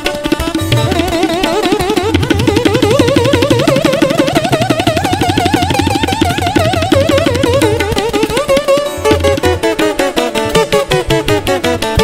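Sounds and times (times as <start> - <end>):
tabla drumming: 0.0 - 12.0.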